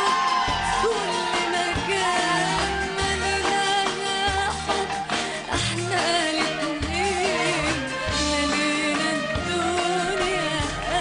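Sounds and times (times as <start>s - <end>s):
live band playing pop song: 0.0s - 11.0s.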